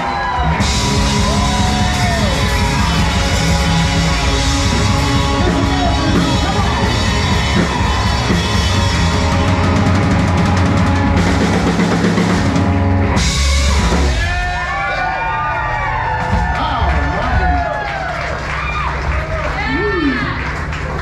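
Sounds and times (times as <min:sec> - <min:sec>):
people whooping: 0:00.0 - 0:12.0, 0:14.1 - 0:21.0
live country band playing: 0:00.0 - 0:14.6.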